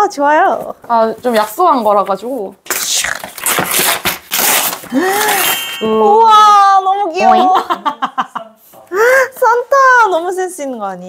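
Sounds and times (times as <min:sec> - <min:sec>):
wrapping paper tearing: 0:02.7 - 0:05.5.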